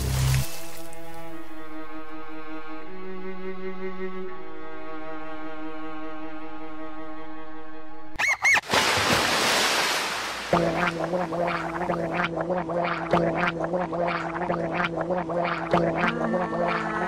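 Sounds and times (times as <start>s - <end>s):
cartoon liquid splash: 8.2s - 16.8s
bubbly pops and gurgles: 10.5s - 17.0s.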